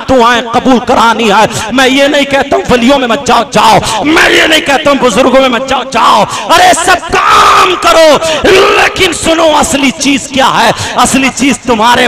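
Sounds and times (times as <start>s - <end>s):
man preaching through microphone: 0.0s - 12.0s.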